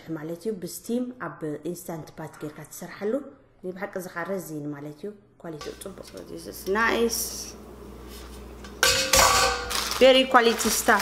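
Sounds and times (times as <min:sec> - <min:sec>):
metal basket clattering: 0:08.8 - 0:11.0.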